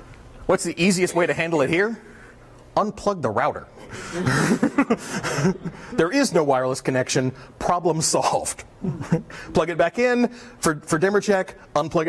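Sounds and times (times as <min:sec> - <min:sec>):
person speaking: 0:00.4 - 0:12.0
crowd laughing: 0:03.9 - 0:06.4.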